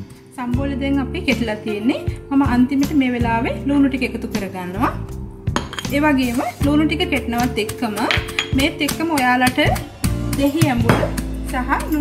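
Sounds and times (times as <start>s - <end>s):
background music with singing: 0.0s - 12.0s
stone pestle pounding in mortar: 10.4s - 11.3s.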